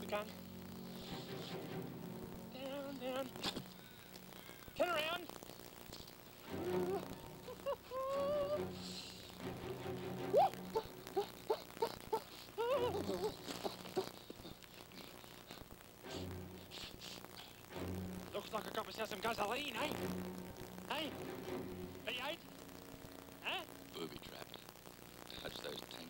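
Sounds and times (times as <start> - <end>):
wordless vocal whoops and hums: 6.5 - 9.2, 10.2 - 13.5.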